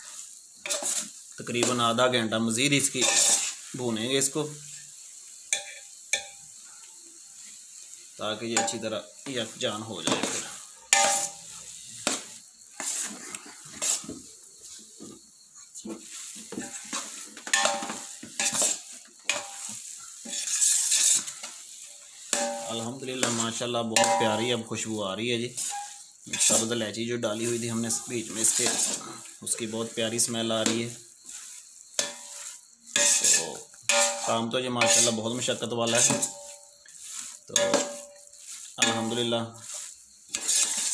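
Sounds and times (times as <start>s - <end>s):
faint sizzle of frying: 0.0s - 40.9s
spoon scraping a pot: 0.6s - 1.8s, 2.9s - 3.7s, 10.0s - 14.2s, 16.0s - 21.6s, 22.3s - 24.5s, 25.6s - 26.8s, 27.4s - 40.9s
steel spoon clinking on pot: 5.5s - 6.5s, 8.6s - 8.9s, 10.2s - 11.5s, 17.5s - 19.7s, 22.3s - 24.5s, 32.0s - 35.2s, 37.5s - 39.3s.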